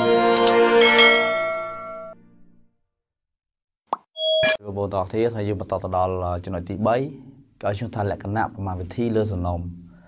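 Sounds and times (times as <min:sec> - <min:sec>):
ringing jingle tones: 0:04.2 - 0:04.6.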